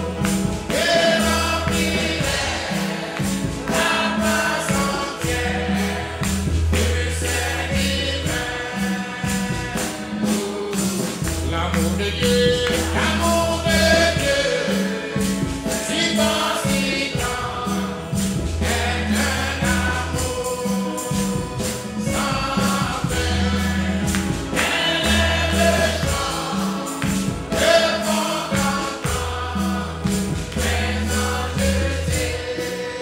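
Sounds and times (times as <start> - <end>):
bass line: 0.0 - 33.0
group of voices singing: 0.0 - 33.0
steady percussion beat: 0.0 - 33.0.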